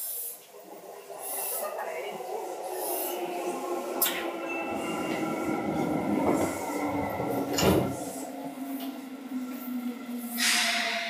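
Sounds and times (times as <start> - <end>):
electric train whining: 0.0 - 11.0
wheels rumbling on rail: 0.4 - 11.0.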